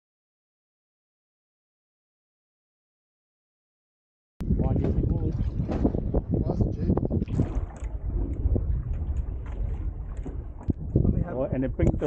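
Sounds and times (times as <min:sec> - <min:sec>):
wind rumbling on microphone: 0:04.4 - 0:12.0.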